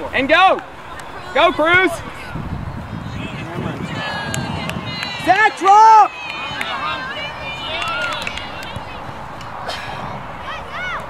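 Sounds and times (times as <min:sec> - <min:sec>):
distant shouts and calls: 0:00.0 - 0:11.0
outdoor background noise: 0:00.0 - 0:11.0.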